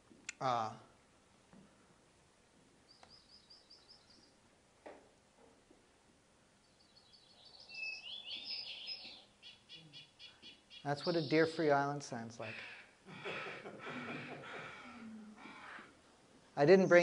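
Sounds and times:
faint songbird chorus: 0:02.8 - 0:04.5, 0:06.5 - 0:13.0, 0:16.6 - 0:17.0.

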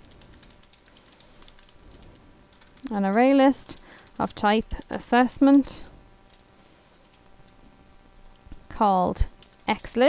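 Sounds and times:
computer keyboard typing: 0:00.0 - 0:05.2, 0:06.3 - 0:07.2, 0:09.4 - 0:10.0.

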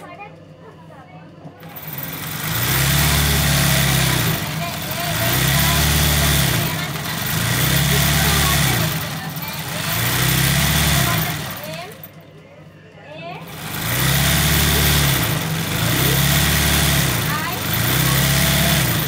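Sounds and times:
sewing machine motor humming: 0:01.6 - 0:12.2, 0:13.4 - 0:19.0.

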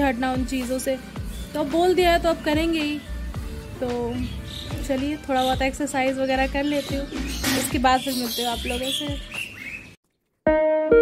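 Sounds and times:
plucked background music: 0:00.0 - 0:09.5, 0:10.5 - 0:11.0
small birds chirping: 0:00.0 - 0:10.1.

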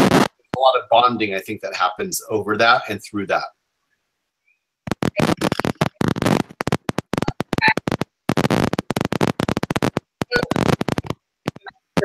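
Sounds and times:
harsh digital noise bursts: 0:00.0 - 0:00.7, 0:04.9 - 0:12.0.

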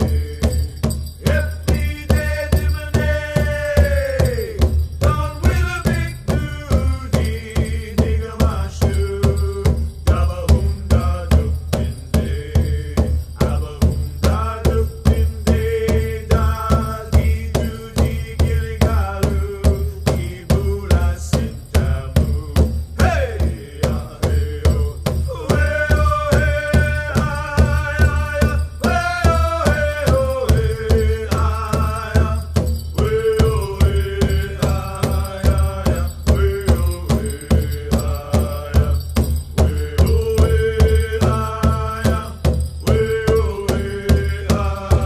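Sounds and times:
large hand drum beat: 0:00.0 - 0:45.0
singers chanting: 0:23.0 - 0:32.4, 0:33.0 - 0:39.0, 0:39.7 - 0:42.3, 0:42.9 - 0:45.0
group of singers chanting: 0:42.9 - 0:45.0.

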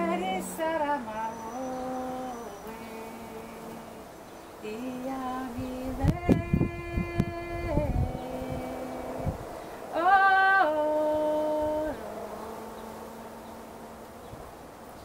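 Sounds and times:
woman singing unaccompanied: 0:00.0 - 0:14.4.

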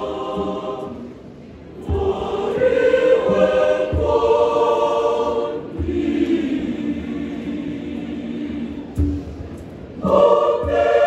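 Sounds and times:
choir singing in harmony: 0:00.0 - 0:11.0
low drum beats: 0:01.7 - 0:08.0, 0:08.7 - 0:11.0.

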